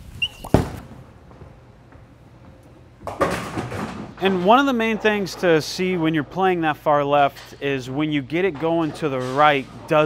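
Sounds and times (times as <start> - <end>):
bowling ball rolling: 0.0 - 7.1, 7.8 - 10.0
bowling ball thud on lane: 0.4 - 1.4
bowling pins clattering: 0.4 - 10.0.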